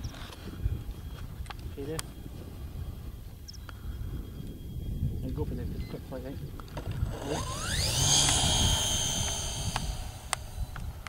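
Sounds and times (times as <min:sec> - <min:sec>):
wind rumble on microphone: 0:00.0 - 0:11.0
model aircraft motor whining: 0:06.5 - 0:11.0.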